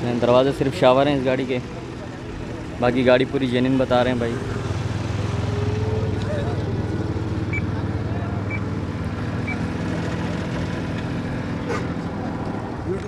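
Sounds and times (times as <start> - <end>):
small car engine idling: 0.0 - 13.0.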